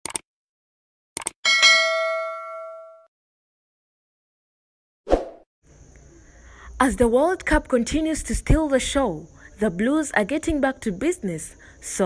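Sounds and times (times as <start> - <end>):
bright bell ding: 1.5 - 3.1.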